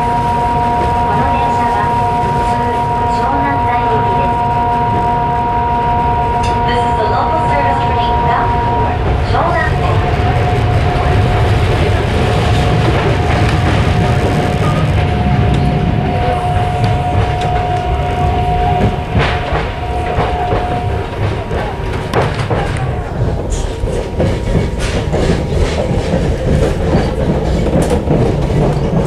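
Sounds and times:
high inverter whine: 0.0 - 24.0
wheels rumbling on rail: 0.0 - 29.0
sharp rail clicks: 16.5 - 29.0.

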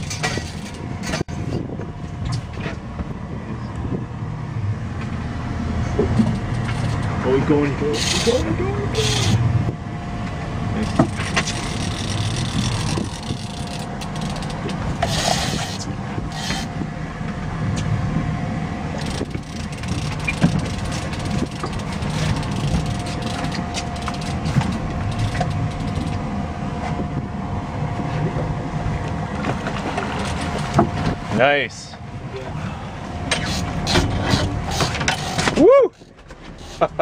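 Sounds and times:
boat motor running: 0.0 - 37.0
sharp clicks and knocks: 10.8 - 16.7, 19.0 - 26.2.

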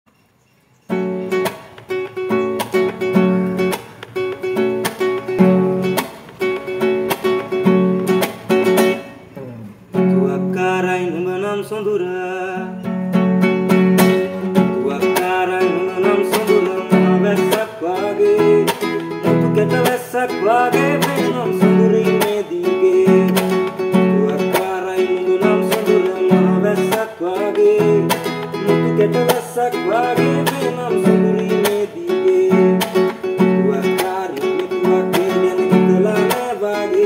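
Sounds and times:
classical guitar plucked: 0.9 - 37.0
man singing: 9.4 - 12.9, 14.1 - 37.0.

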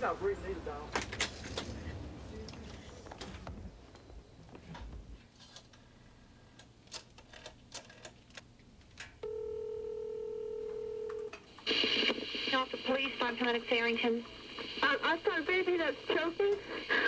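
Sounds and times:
rotary dial and handset clicks: 6.6 - 8.4
telephone ringback tone: 9.2 - 11.3
person answering phone: 9.2 - 11.4.

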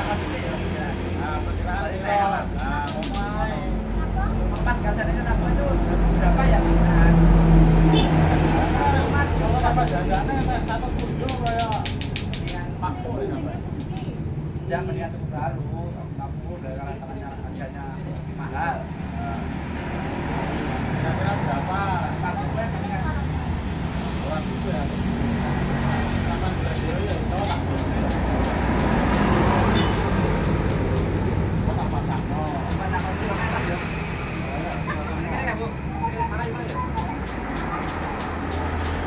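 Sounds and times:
people talking: 0.0 - 19.4, 20.6 - 39.0
motor vehicle traffic rumble: 0.0 - 39.0
sharp click: 9.8 - 12.6.

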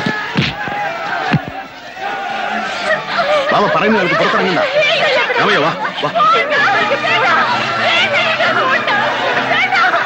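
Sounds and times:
women crying and wailing: 2.4 - 10.0.

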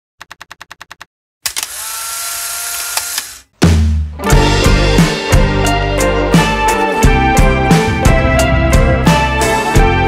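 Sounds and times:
quick clicks: 0.2 - 3.5
music with deep bass: 4.3 - 10.0.

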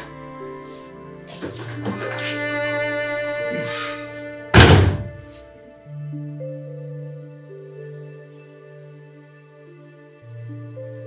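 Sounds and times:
soft background music: 0.0 - 11.0
loud heavy thud: 4.5 - 5.3.

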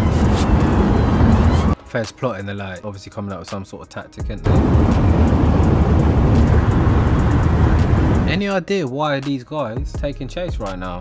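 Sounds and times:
road wind and engine noise: 0.0 - 1.8, 4.4 - 8.5.

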